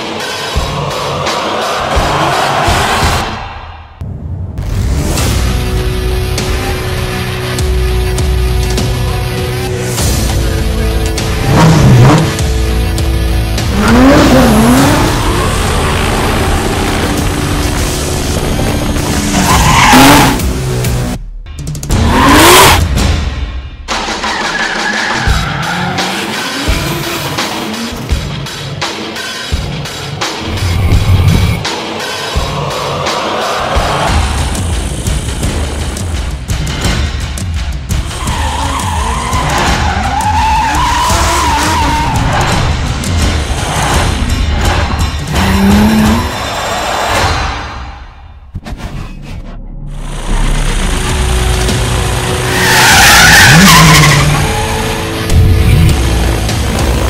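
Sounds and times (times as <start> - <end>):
music: 0.0 - 57.0
engine revving: 5.2 - 21.2, 21.9 - 23.0, 38.0 - 47.3, 49.9 - 57.0
tyres screeching: 19.1 - 20.4, 38.0 - 42.5, 52.2 - 57.0.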